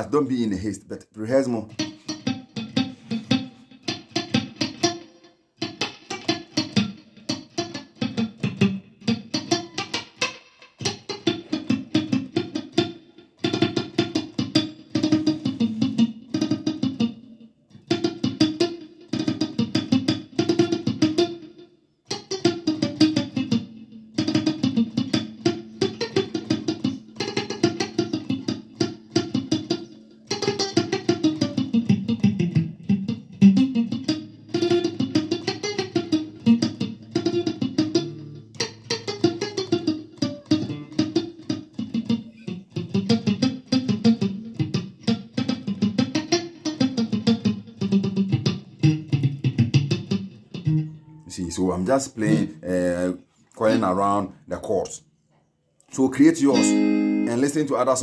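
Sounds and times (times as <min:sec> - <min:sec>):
palm-muted electric guitar picking: 0:01.4 - 0:54.0, 0:56.3 - 0:58.0.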